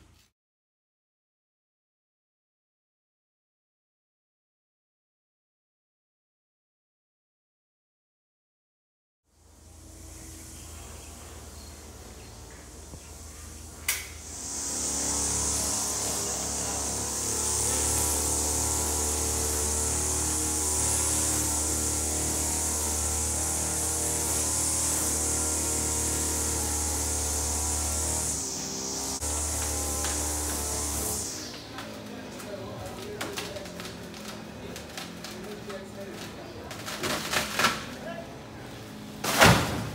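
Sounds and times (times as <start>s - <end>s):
chainsaw cutting wood: 9.6s - 38.0s.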